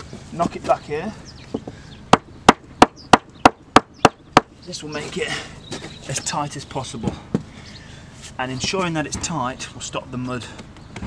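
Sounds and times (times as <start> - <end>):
hammer striking wooden plank: 2.1 - 4.5.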